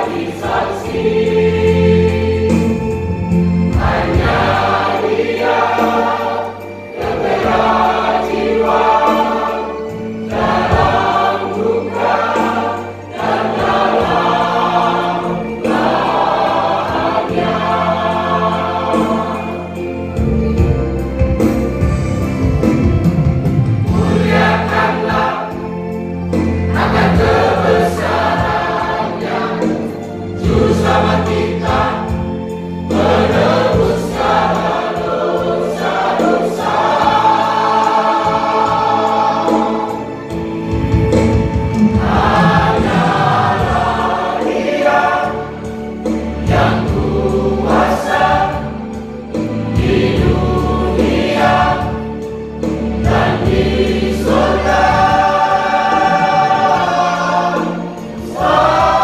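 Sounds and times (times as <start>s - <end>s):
church choir singing: 0.0s - 59.0s
musical accompaniment: 0.0s - 59.0s.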